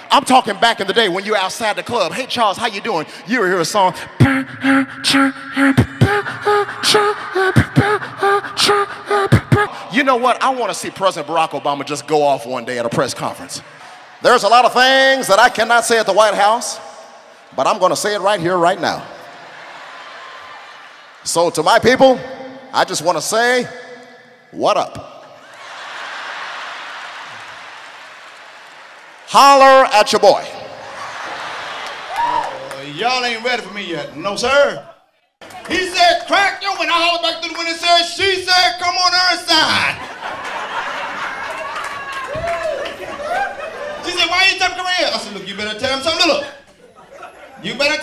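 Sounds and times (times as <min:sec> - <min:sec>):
person beatboxing: 0:04.0 - 0:10.0
hummed repeated notes: 0:04.2 - 0:09.8
audience applause: 0:25.5 - 0:29.4, 0:30.9 - 0:32.9, 0:40.2 - 0:43.6.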